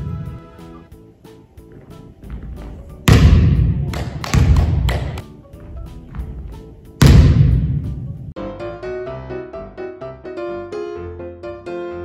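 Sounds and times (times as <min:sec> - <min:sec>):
ball bouncing on wooden floor: 0:02.3 - 0:05.2.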